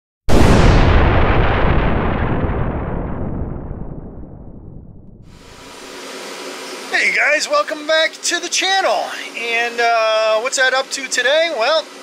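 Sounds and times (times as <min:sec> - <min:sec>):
explosion boom rumbling: 0:00.3 - 0:05.8.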